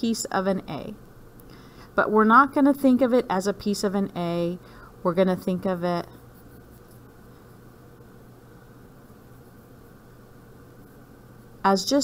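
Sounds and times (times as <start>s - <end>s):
steady low hum: 0.0s - 12.0s
pencil scratching on paper: 5.4s - 7.6s.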